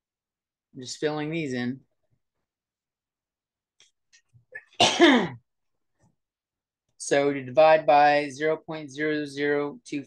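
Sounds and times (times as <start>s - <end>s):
man coughing: 4.5s - 5.5s.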